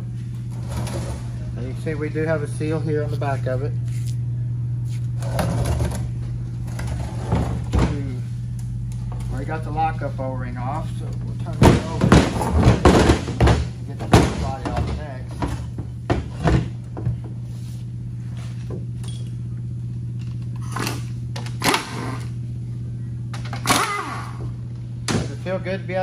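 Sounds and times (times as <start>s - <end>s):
low hum: 0.0s - 26.0s.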